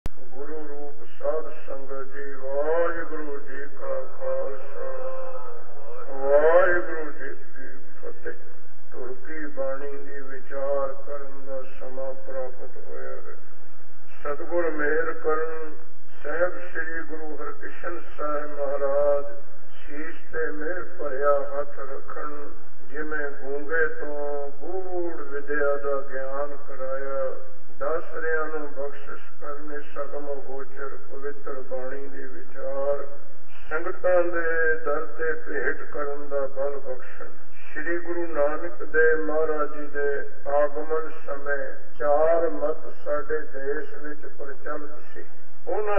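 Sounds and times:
man speaking: 0.3s - 13.4s, 14.1s - 45.9s
man talking: 0.3s - 13.4s, 14.1s - 45.9s.

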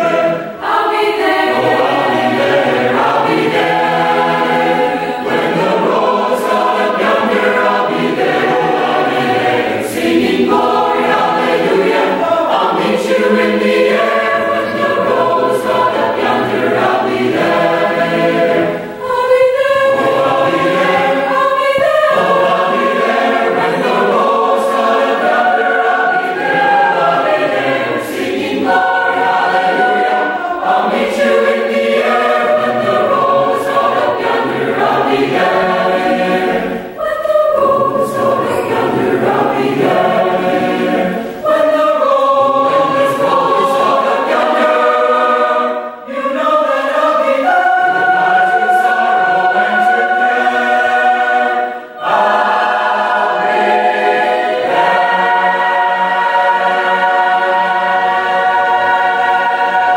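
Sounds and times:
choir singing in harmony: 0.0s - 59.9s.

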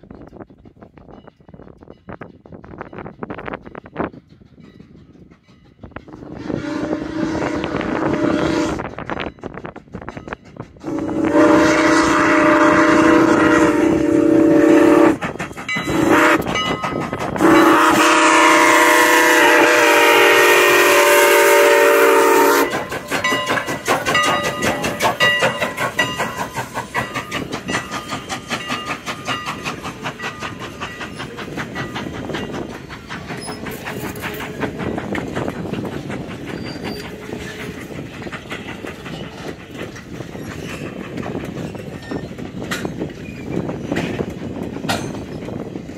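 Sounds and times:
train wheels clicking over rail joints: 0.0s - 45.9s
steam locomotive whistle: 6.1s - 9.0s, 10.8s - 15.2s, 15.8s - 16.7s, 17.4s - 23.4s.

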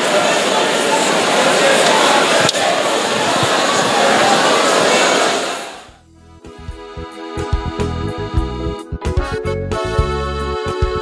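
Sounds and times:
congregation praying aloud: 0.0s - 5.9s
keyboard music with steady beat: 6.0s - 11.0s.

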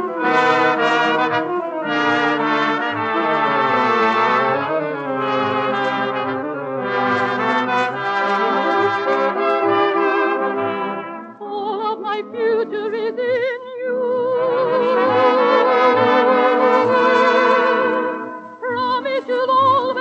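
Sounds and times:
dance orchestra brass melody: 0.0s - 11.4s, 14.6s - 19.0s.

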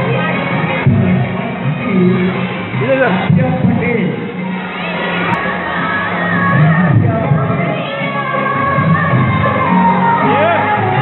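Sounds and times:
children shouting and cheering: 0.0s - 11.0s
music playing: 0.0s - 11.0s.

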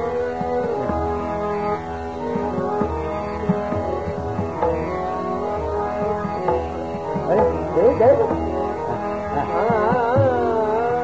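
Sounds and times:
melodic accompaniment: 0.0s - 11.0s
tabla strokes: 0.0s - 11.0s.

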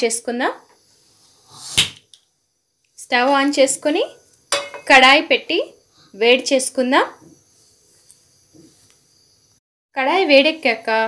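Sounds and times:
frying pan clanking on stove grate: 4.5s - 5.0s.

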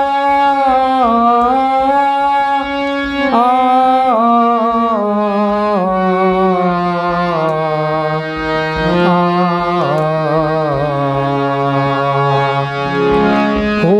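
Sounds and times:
person singing a vowel: 0.0s - 8.3s
harmonium held notes: 0.0s - 13.9s.

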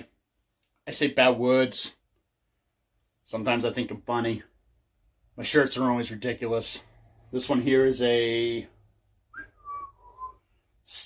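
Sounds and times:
man whistling short notes: 9.3s - 11.0s.

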